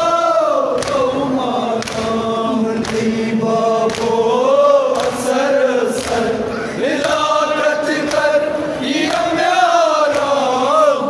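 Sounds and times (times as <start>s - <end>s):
men chanting in chorus: 0.0s - 11.0s.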